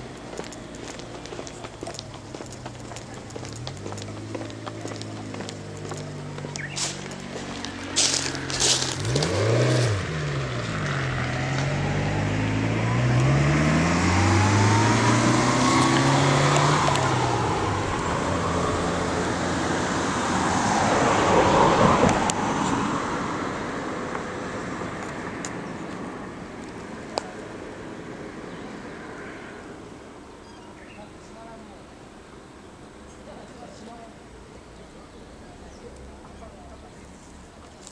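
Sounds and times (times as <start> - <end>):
vehicle driving past: 0.0 - 26.5.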